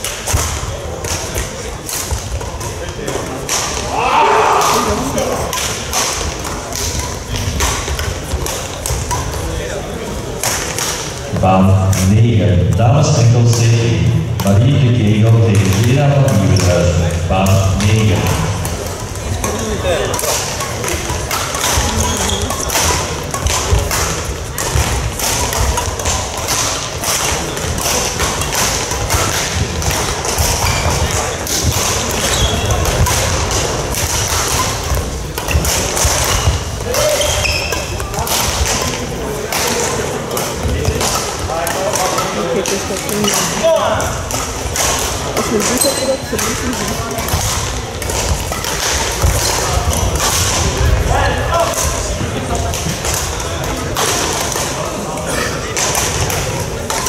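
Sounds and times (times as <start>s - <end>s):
rackets striking shuttlecocks: 0.0s - 57.0s.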